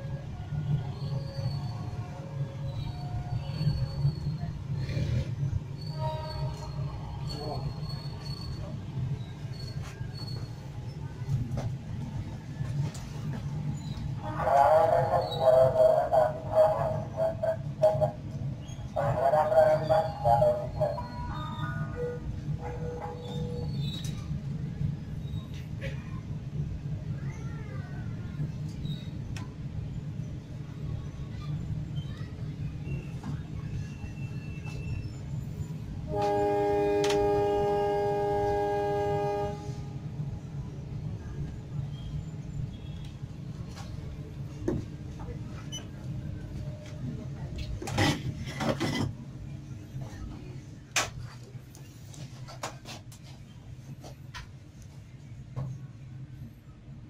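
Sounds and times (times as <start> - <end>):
stationary train humming: 0.0 - 57.0
locomotive air horn: 36.1 - 40.2.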